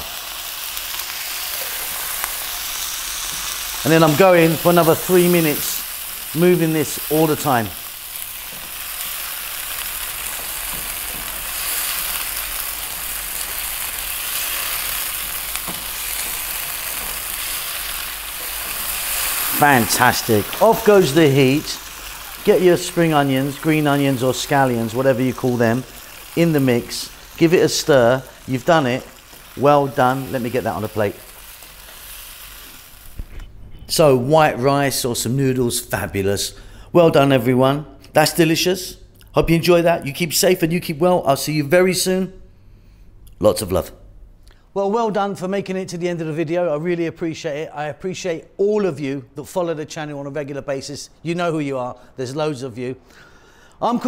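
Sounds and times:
food sizzling in a wok: 0.0 - 33.3.

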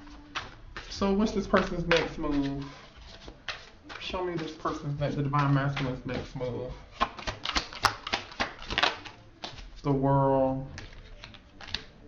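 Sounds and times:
cards being shuffled: 0.0 - 10.0, 10.7 - 12.0.

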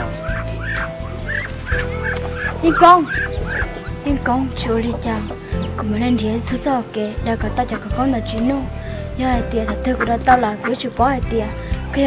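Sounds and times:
fowl calling: 0.0 - 5.9.

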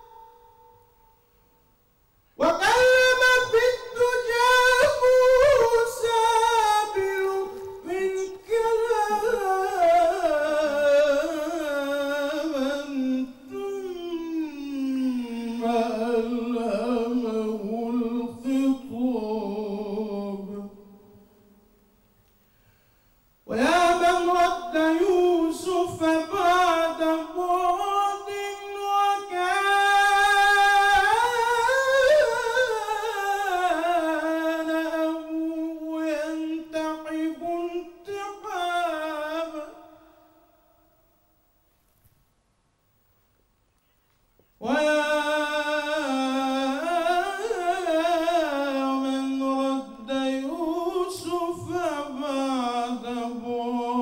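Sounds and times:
man chanting devotional song: 2.4 - 21.2, 23.4 - 40.7, 44.6 - 54.0.

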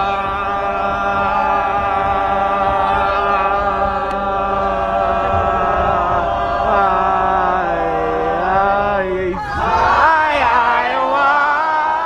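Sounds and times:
voices chanting a held chord: 0.0 - 12.0.

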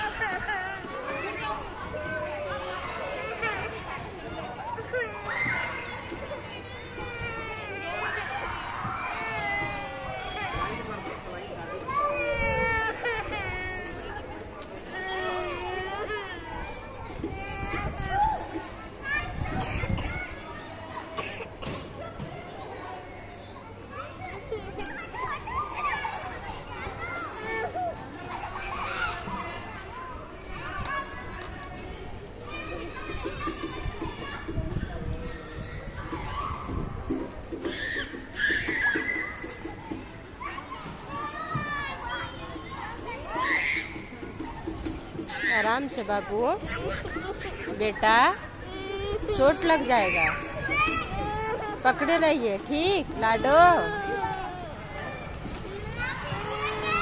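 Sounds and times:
children's voices at play: 0.0 - 57.0.

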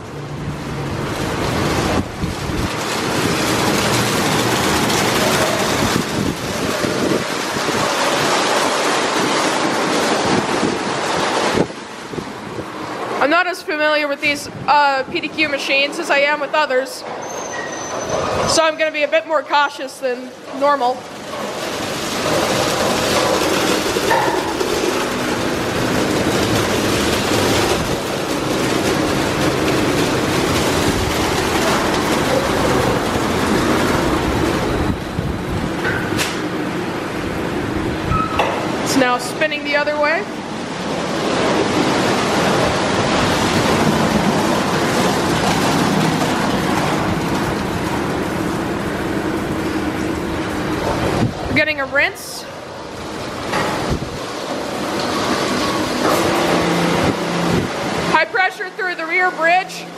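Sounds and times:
water spraying on car: 0.0 - 16.8, 17.7 - 59.9.

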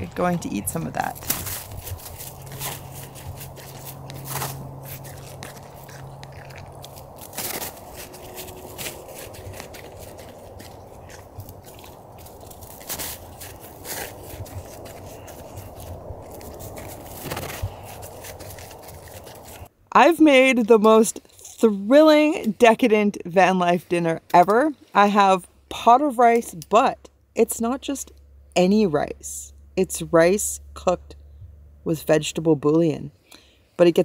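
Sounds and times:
dog crunching snow: 0.8 - 19.7.

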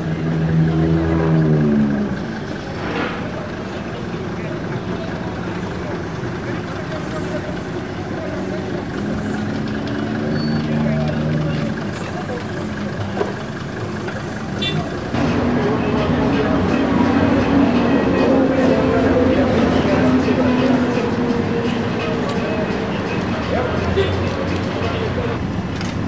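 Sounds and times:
vehicle engines and traffic: 0.0 - 26.0
people talking: 1.9 - 25.4.

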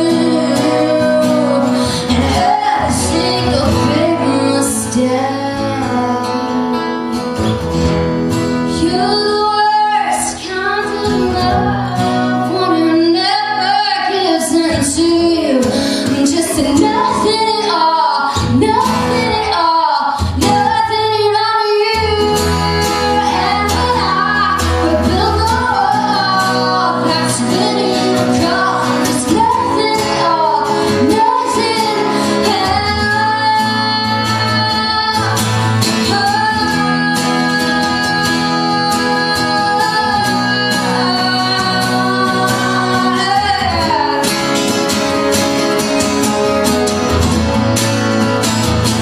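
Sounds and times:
woman singing: 0.0 - 7.4, 8.3 - 45.7
acoustic guitars strumming chords: 0.0 - 49.0.

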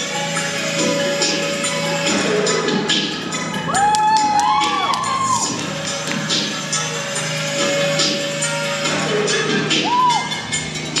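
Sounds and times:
routine music playing: 0.0 - 11.0
audience cheering and whooping: 3.6 - 5.8, 9.8 - 10.4.

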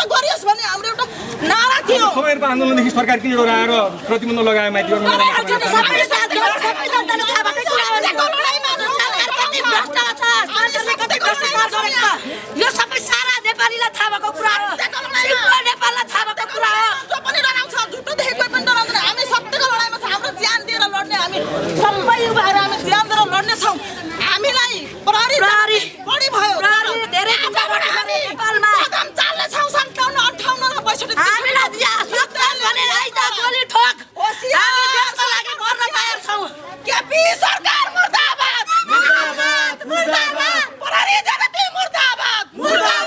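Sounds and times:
people speaking over one another: 0.0 - 43.0
women shouting: 4.9 - 21.2, 21.8 - 43.0.

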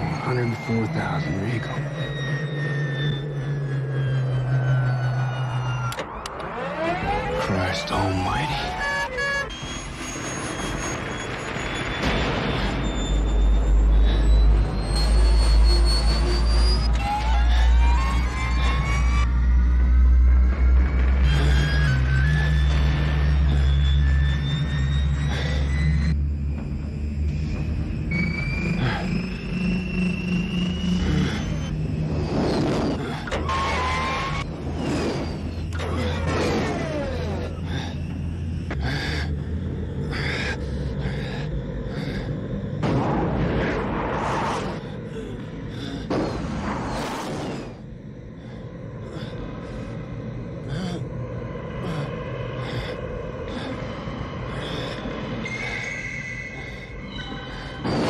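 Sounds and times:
film score music: 0.0 - 58.0
deep rumble: 9.6 - 58.0.

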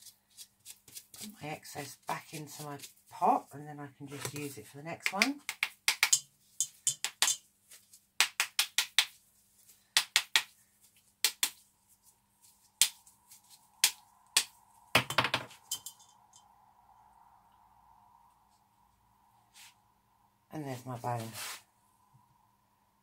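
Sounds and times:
faint steady hum: 10.6 - 23.0.

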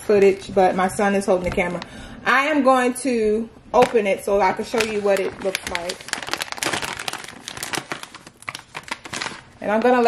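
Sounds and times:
plastic pouch crinkling: 4.6 - 10.0.

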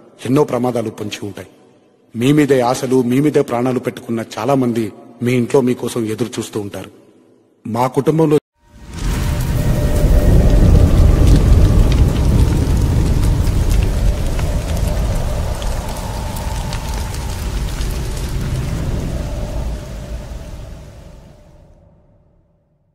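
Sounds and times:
scattered crackles: 8.7 - 21.4
deep rumble: 8.8 - 22.2.

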